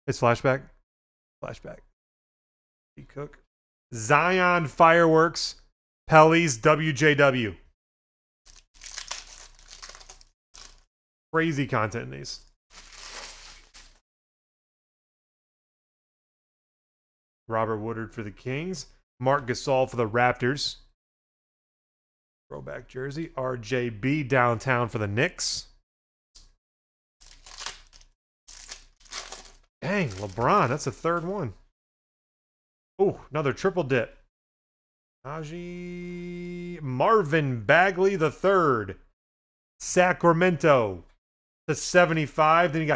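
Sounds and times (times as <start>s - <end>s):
foil pack tearing and crinkling: 8.5s - 10.9s, 12.7s - 14.0s, 27.2s - 30.8s.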